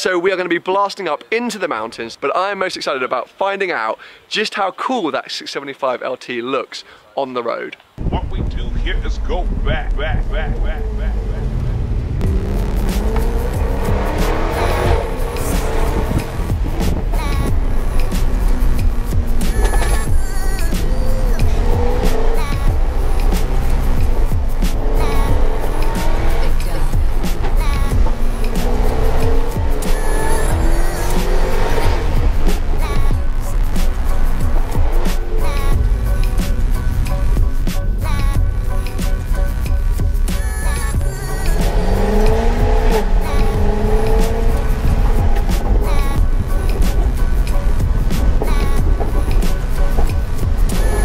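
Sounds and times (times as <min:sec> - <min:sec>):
background music with beat: 0:08.0 - 0:51.0
sports car engines accelerating: 0:08.8 - 0:51.0.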